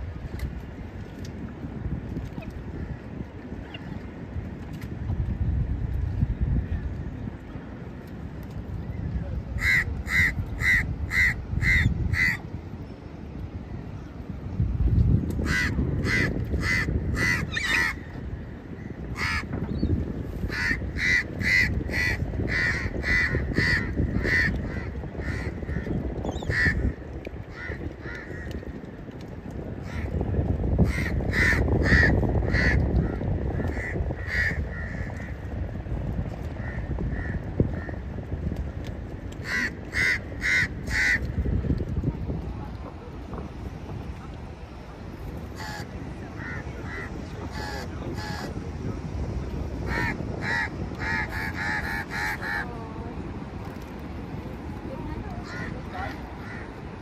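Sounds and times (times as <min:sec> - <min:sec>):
water: 0:00.0 - 0:57.0
wind: 0:00.0 - 0:57.0
crow cawing: 0:39.4 - 0:41.2, 0:45.6 - 0:45.8, 0:49.9 - 0:52.6.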